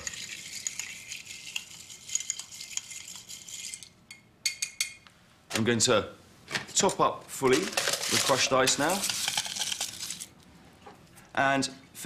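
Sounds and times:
spoon stirring ice in glass: 0:00.0 - 0:03.9, 0:07.6 - 0:10.3.

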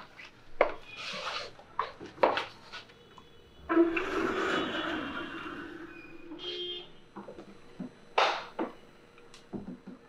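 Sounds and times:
sliding door rolling and squealing: 0:03.6 - 0:06.7
door squeak: 0:03.6 - 0:06.8.

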